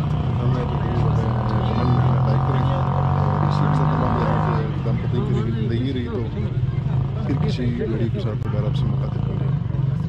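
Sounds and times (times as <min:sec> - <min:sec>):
man speaking close up: 0:07.2 - 0:09.6.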